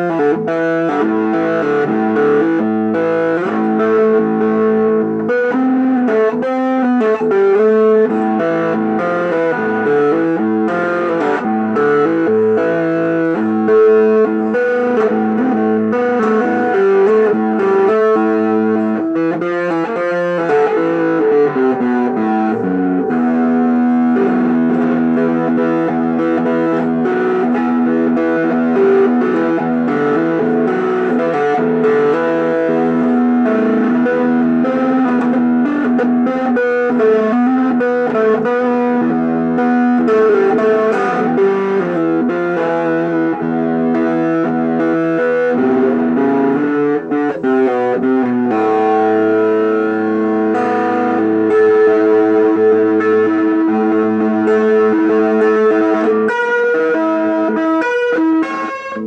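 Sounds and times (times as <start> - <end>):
electric guitar chords and notes: 0.0 - 59.0.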